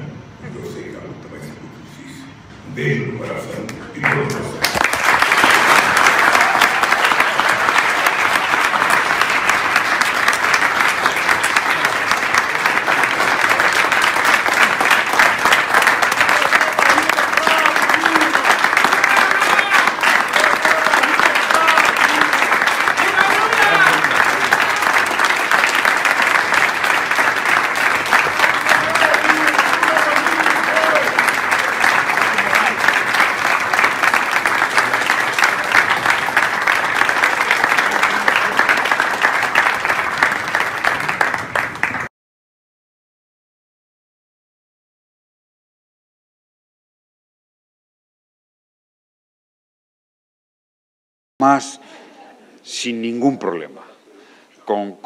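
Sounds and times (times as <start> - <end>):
audience applauding: 4.0 - 42.1.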